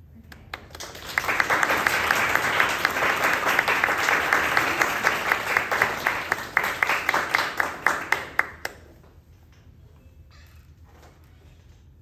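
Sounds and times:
audience applause: 0.5s - 8.9s.

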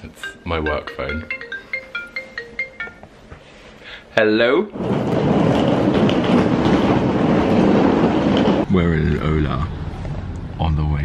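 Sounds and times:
suitcase wheels rolling on pavement: 4.8s - 8.7s.

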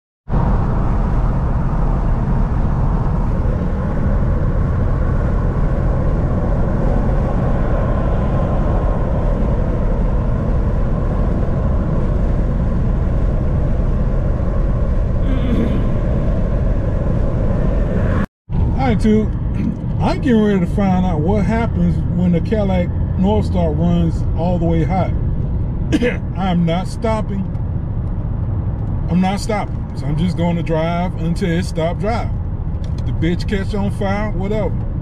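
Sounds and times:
road and wind noise in car: 0.3s - 35.0s
car engine running: 0.4s - 35.0s.

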